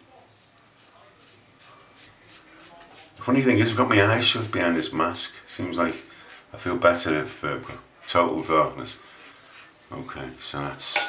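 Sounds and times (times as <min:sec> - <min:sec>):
razor scraping stubble: 0:00.3 - 0:03.4.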